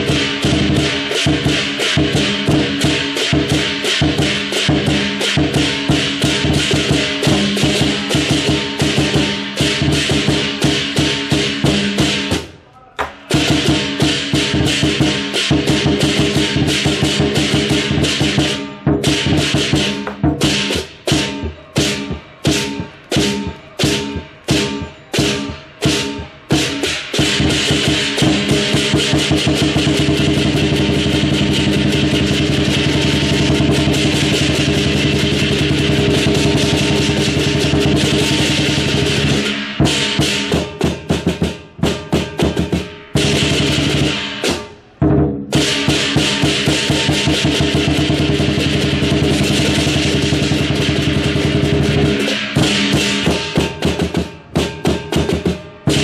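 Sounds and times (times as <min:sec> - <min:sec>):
clashing cymbals: 0:00.0 - 0:12.6, 0:13.2 - 0:56.0
big drum beats and rolls: 0:00.0 - 0:56.0.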